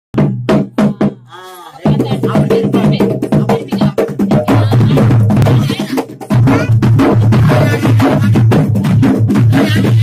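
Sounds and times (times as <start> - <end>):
frame drums struck by hand: 0.2 - 10.0
person calling out: 0.8 - 6.8.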